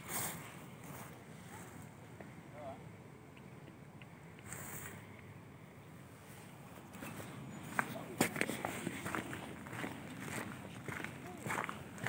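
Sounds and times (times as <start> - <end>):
faint rustle: 0.0 - 2.0, 4.4 - 5.2.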